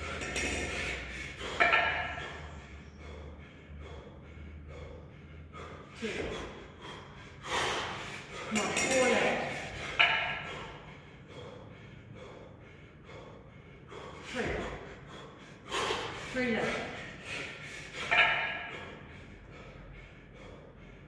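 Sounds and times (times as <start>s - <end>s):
man breathing hard: 0.0s - 21.0s.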